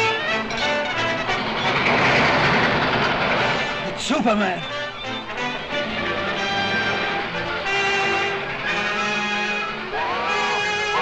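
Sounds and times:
cartoon train rushing on rails: 0.0 - 11.0
orchestral music: 0.0 - 11.0.

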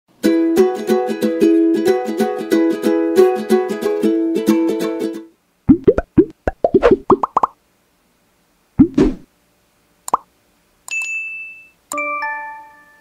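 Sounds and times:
short pops rising in pitch: 5.7 - 7.6, 10.1 - 10.3
bright ding: 10.9 - 11.8.

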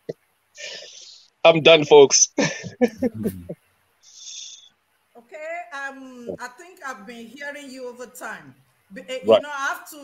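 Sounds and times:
voice over video call: 1.0 - 4.6, 9.1 - 9.6.

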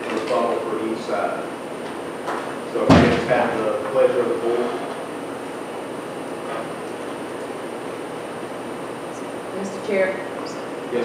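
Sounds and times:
people talking: 0.0 - 1.5, 2.7 - 4.9, 9.6 - 11.0
door shutting with heavy thud: 2.8 - 3.5.

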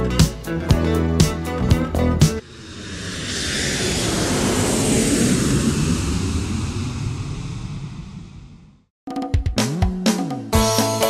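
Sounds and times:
jet airplane flying by: 2.4 - 8.9.

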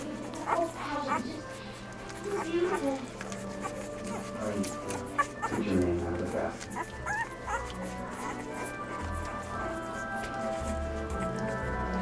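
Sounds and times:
puppies squeaking and whimpering: 0.0 - 12.0.

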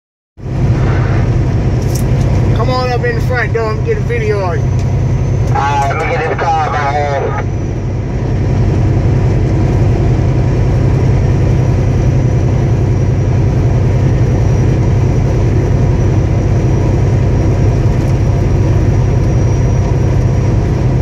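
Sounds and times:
road noise: 0.4 - 21.0
truck engine drone: 0.4 - 21.0.

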